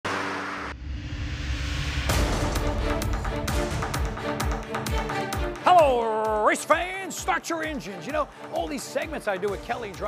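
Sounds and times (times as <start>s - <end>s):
rushing whoosh: 0.1s - 3.4s.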